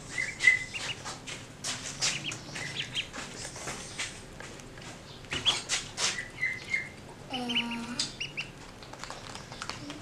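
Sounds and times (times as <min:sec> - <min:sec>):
ducklings peeping: 0:00.0 - 0:10.0.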